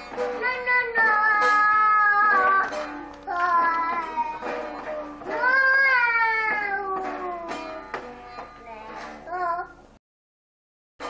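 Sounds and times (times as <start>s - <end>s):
child singing into toy microphone: 0.0s - 9.8s.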